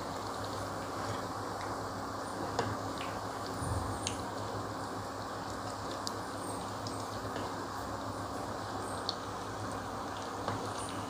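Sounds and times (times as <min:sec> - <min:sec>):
food deep-frying in hot oil: 0:00.0 - 0:11.0.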